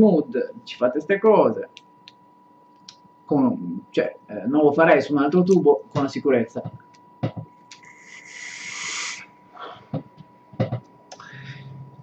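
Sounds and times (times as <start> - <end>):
airy hiss of inhaling vape: 7.8 - 9.3
breathy exhaling: 11.2 - 11.9.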